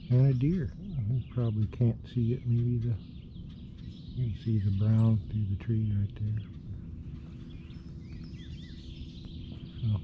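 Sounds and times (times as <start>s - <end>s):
small birds chirping: 0.0s - 10.0s
steady low rumble: 0.0s - 10.0s.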